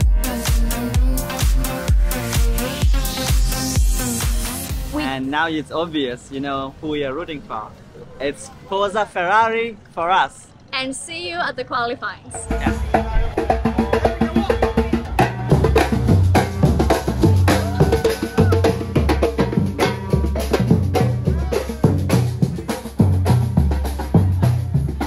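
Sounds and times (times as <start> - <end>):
bass drums thumping: 0.0 - 5.0, 12.4 - 25.0
street percussion band drumming: 12.4 - 25.0.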